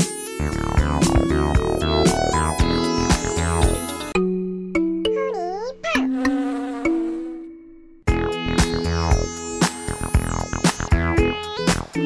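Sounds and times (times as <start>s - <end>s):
buzzy electronic jingle tone: 0.3s - 4.2s.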